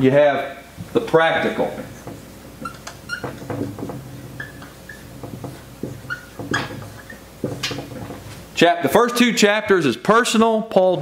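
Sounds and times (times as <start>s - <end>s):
marker squeaking on whiteboard: 1.4s - 8.5s.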